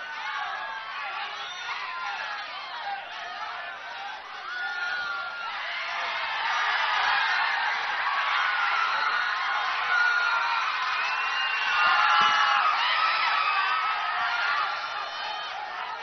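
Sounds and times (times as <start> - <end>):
crowd cheering and yelling: 0.0 - 16.0.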